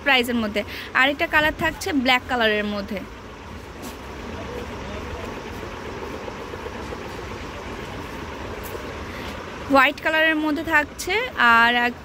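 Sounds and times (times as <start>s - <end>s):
low rumble and hiss: 0.0s - 12.0s.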